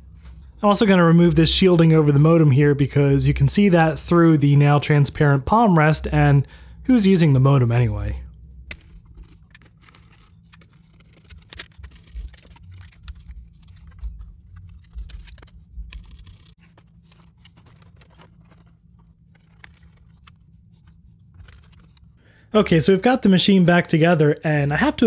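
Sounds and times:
low steady hum: 0.0s - 25.0s.

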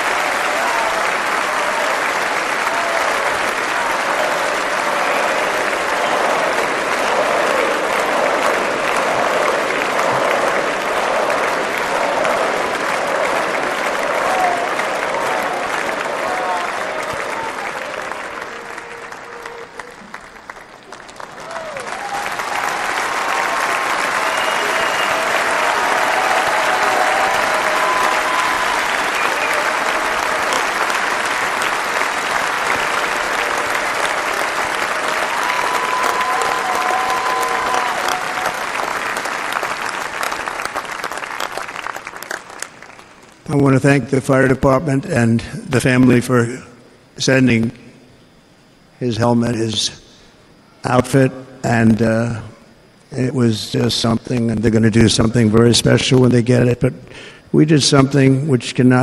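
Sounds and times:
crowd applauding: 0.0s - 44.6s.

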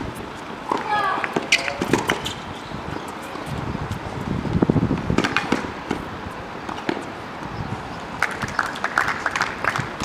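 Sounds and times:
small crowd applause: 8.2s - 10.0s.

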